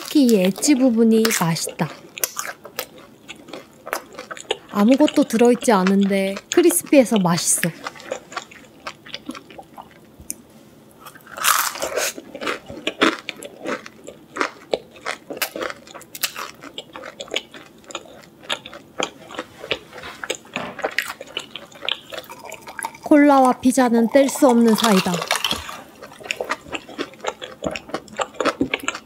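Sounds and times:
person chewing crispy pizza crust: 0:00.0 - 0:10.4, 0:11.0 - 0:29.0.

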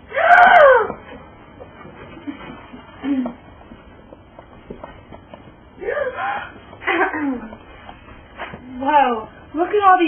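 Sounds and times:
person crying out sliding down: 0:00.1 - 0:01.0.

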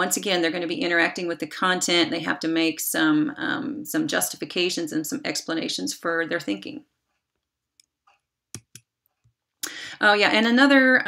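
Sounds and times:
computer clicks: 0:07.8 - 0:08.9
short breath: 0:09.6 - 0:10.0.

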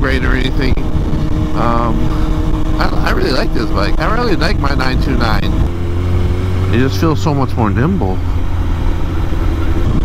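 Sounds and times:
motorcycle engine running steadily: 0:00.0 - 0:10.0
wind and road noise: 0:00.0 - 0:10.0.

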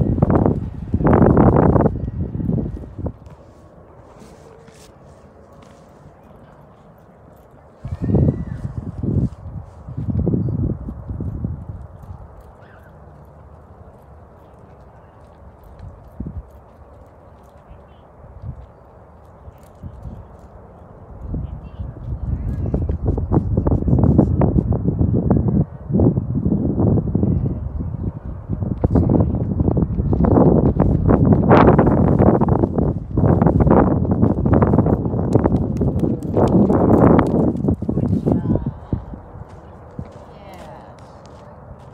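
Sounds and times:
wind buffeting microphone: 0:00.0 - 0:41.9.

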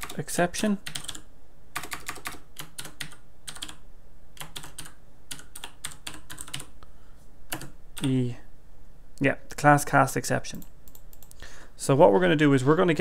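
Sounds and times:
computer keyboard typing: 0:00.0 - 0:00.2, 0:00.8 - 0:03.8, 0:04.4 - 0:06.8, 0:07.5 - 0:08.2, 0:10.5 - 0:11.4.

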